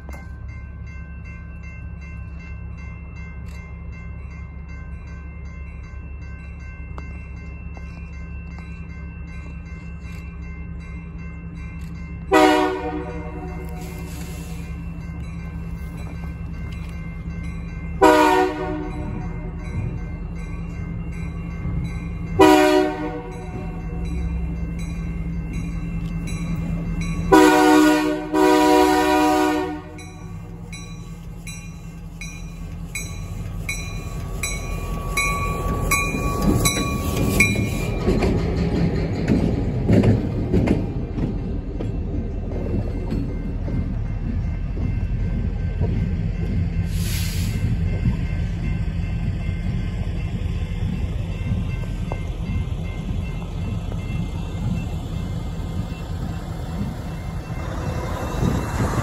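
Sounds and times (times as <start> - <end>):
crossing bell ringing: 0.0 - 59.0
diesel engine and wheels rumbling: 0.0 - 59.0
locomotive air horn blasts: 12.3 - 14.6, 18.0 - 19.3, 22.4 - 23.6, 27.3 - 30.0.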